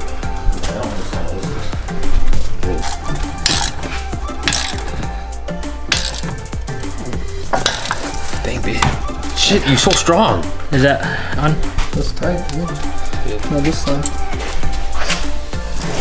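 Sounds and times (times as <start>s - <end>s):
background music: 0.0s - 16.0s
ratchet wrench clicking: 2.8s - 5.0s.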